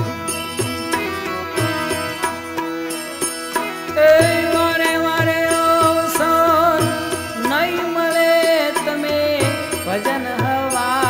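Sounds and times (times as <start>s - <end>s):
keyboard: 0.0s - 11.0s
violin: 0.0s - 11.0s.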